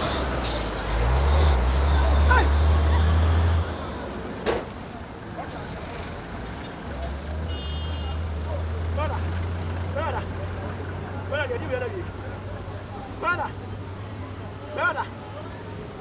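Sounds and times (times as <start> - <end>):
heavy road traffic rumble: 0.0 - 16.0
truck passing: 0.0 - 16.0.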